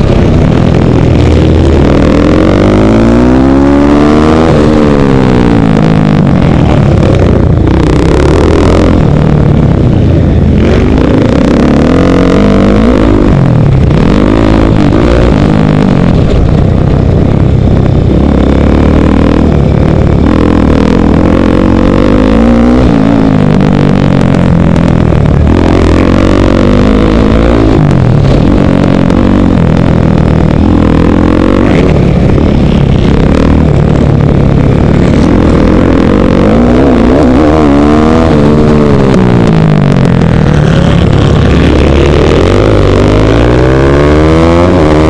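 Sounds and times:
motorcycle engine revving: 0.0s - 45.0s.

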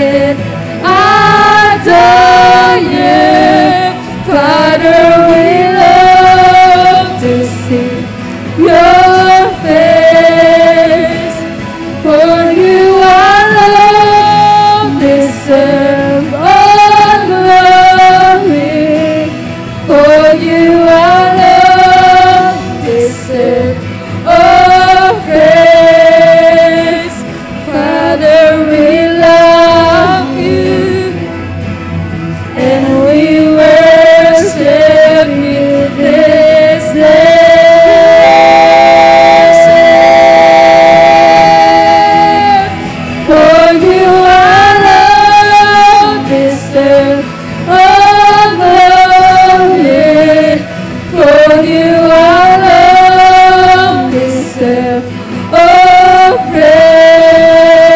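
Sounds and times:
women singing a worship song: 0.0s - 31.8s, 32.4s - 57.9s.

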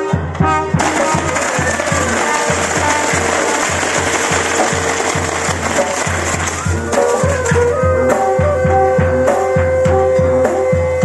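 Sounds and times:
brass band playing: 0.0s - 11.0s
fireworks crackling and fizzing: 0.8s - 7.6s.

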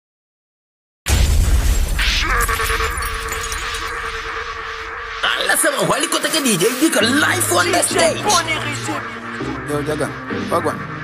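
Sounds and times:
crash-like burst of noise: 1.1s - 5.6s.

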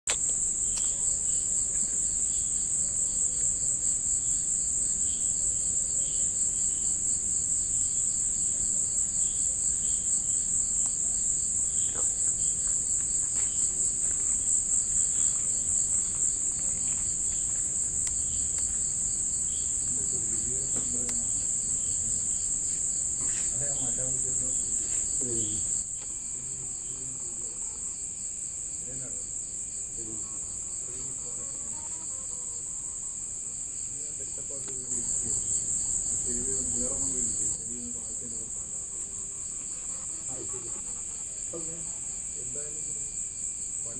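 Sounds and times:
crickets trilling: 0.1s - 43.9s.

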